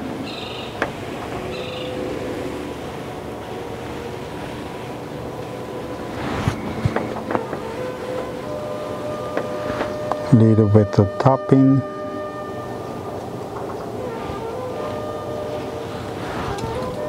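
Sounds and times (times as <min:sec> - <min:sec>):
steady rushing noise: 0:00.0 - 0:10.4, 0:11.9 - 0:17.0.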